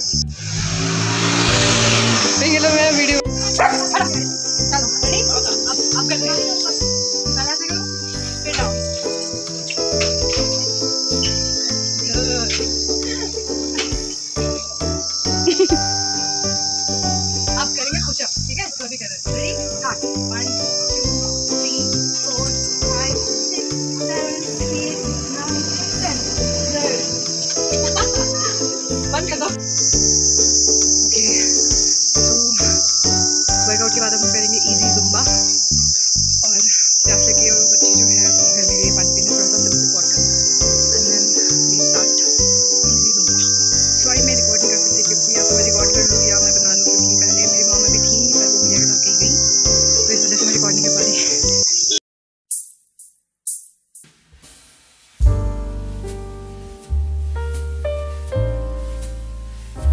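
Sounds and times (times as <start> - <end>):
insects chirring: 0.0 - 54.1.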